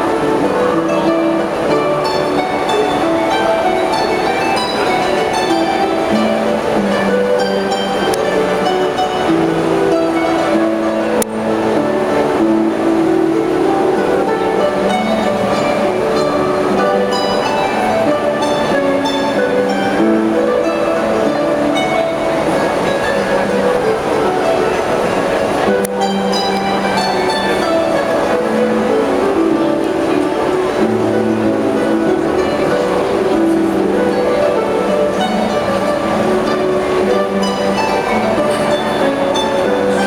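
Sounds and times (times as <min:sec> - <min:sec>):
harps playing melody: 0:00.0 - 0:40.0.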